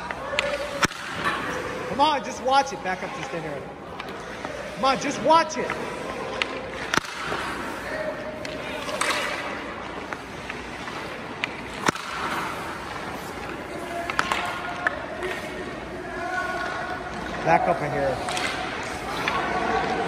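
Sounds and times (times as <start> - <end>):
hockey puck shot cracks: 0.4 - 1.6, 6.4 - 7.8, 8.4 - 13.3
steady rink hiss: 0.4 - 16.3.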